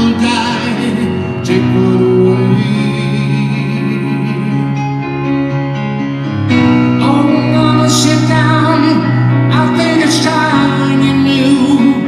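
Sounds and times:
stage piano playing chords: 0.0s - 12.0s.

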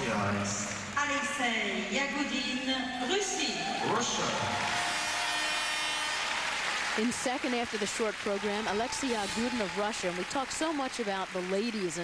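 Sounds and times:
arena audience applauding: 3.1s - 12.0s.

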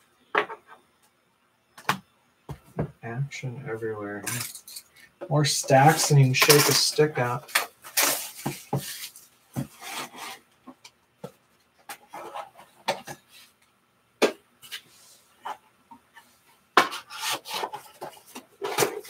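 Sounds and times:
cards sliding and rubbing: 8.0s - 10.5s, 16.8s - 19.0s.

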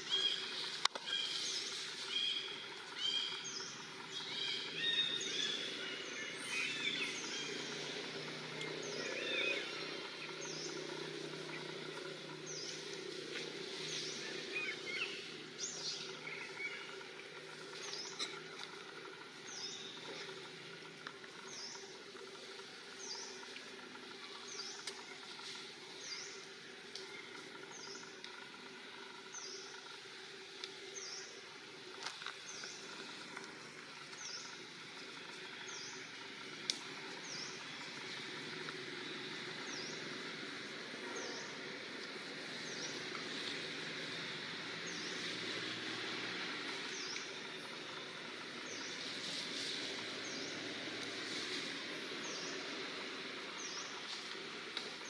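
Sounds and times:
steady background hiss: 0.0s - 55.0s.

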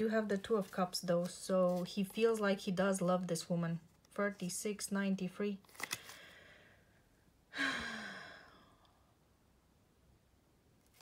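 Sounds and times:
person sighing: 7.5s - 8.8s.

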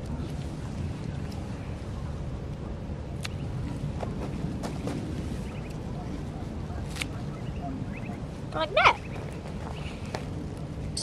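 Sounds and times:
low wind rumble on microphone: 0.0s - 11.0s.

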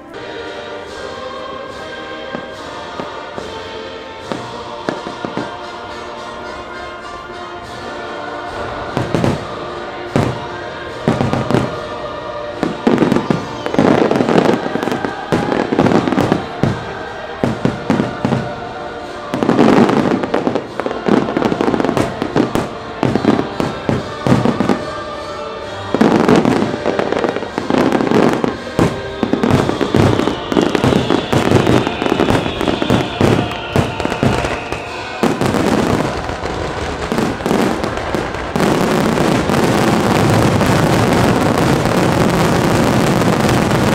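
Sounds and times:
fireworks bursting: 0.0s - 43.9s
music soundtrack: 0.0s - 43.9s.

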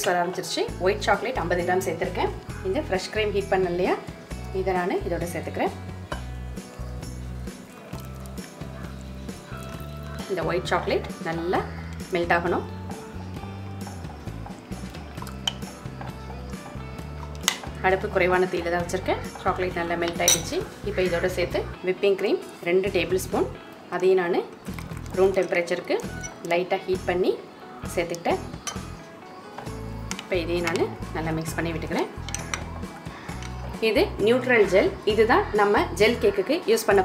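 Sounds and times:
background music: 0.0s - 37.0s
spoon clinking against glass: 20.1s - 20.6s, 25.4s - 26.5s, 28.6s - 29.0s.

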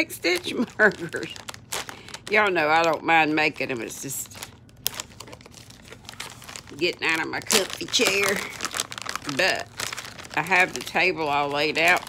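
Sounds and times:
plastic packets rustling: 0.0s - 12.0s.

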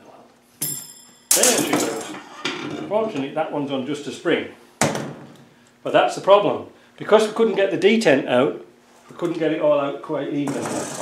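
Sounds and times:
steel parts clinking: 0.6s - 2.6s
steel parts clattering: 0.6s - 2.8s.

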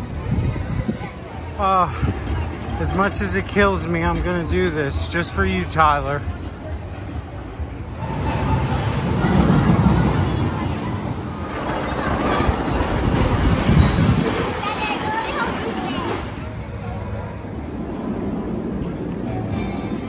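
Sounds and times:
people chattering: 0.0s - 20.0s
roller coaster rumbling on track: 0.0s - 20.0s.

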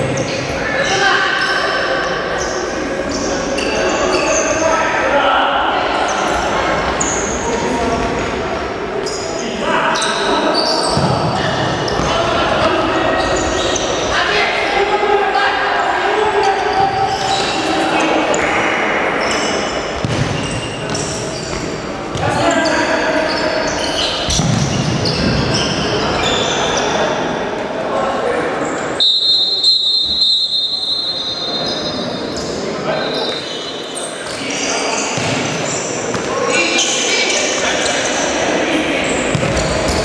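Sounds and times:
players shouting in echoing hall: 0.0s - 40.0s.

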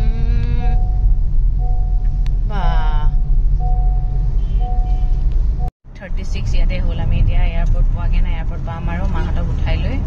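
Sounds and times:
voice: 0.0s - 0.8s, 2.5s - 3.2s, 6.0s - 10.0s
car cabin road rumble: 0.0s - 10.0s
vehicle horn blast: 4.4s - 5.2s.

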